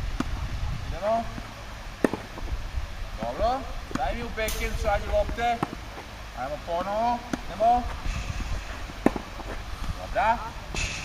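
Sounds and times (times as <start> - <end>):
tennis racket hitting ball: 2.0 - 2.3, 8.8 - 9.6.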